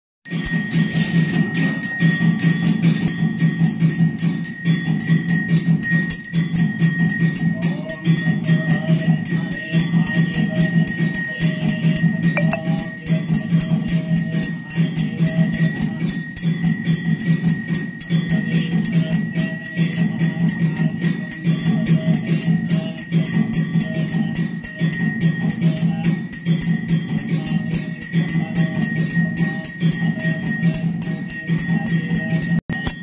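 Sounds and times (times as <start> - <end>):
temple bells ringing fast: 0.3 - 33.0
low beat: 1.0 - 24.3.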